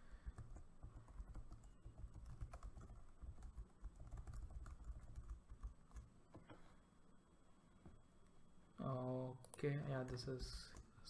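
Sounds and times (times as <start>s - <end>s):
typing on computer keyboard: 0.2s - 6.1s.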